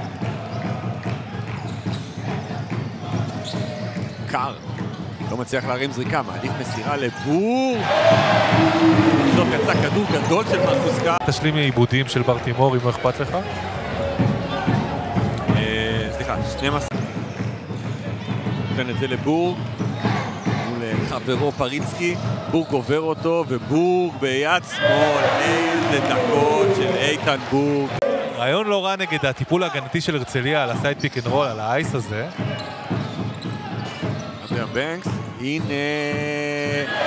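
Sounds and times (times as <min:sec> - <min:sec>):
crowd noise indoors: 0:00.0 - 0:37.0
voices: 0:24.6 - 0:28.6.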